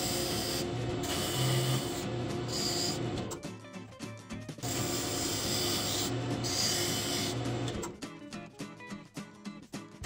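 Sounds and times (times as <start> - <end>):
lathe tool cutting wood: 0.0 - 3.2, 4.6 - 7.8.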